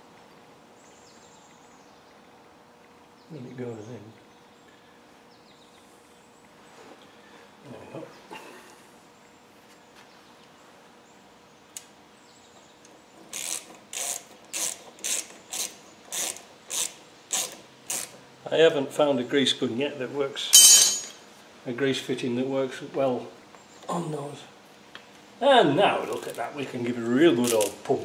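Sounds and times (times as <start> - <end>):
ratchet spanner clicking: 13.3 - 18.1.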